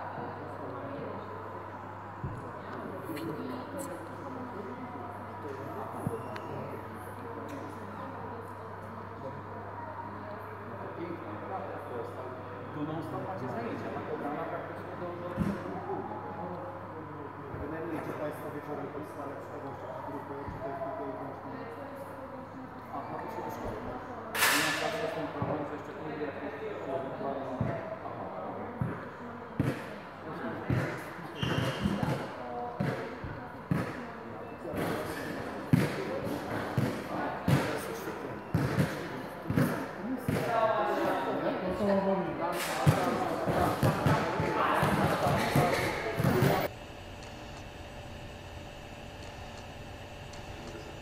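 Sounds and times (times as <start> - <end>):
faint constant hum: 0.0 - 51.0
voices in a sports hall: 0.0 - 51.0.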